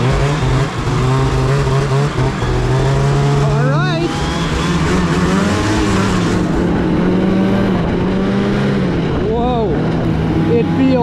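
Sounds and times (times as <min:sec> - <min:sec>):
snowmobile engine under throttle: 0:00.0 - 0:11.0.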